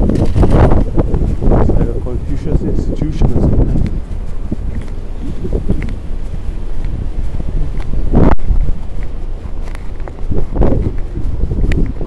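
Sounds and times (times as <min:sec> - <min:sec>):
low rumble of street traffic: 0:00.0 - 0:12.0
wind buffeting microphone: 0:00.0 - 0:12.0.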